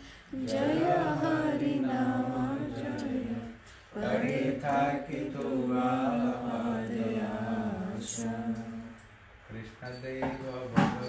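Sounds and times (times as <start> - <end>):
devotional chant singing: 0.0 - 9.2.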